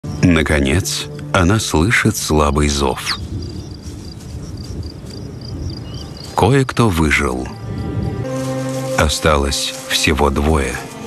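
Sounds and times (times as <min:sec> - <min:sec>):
insect chirping: 0:00.0 - 0:09.0.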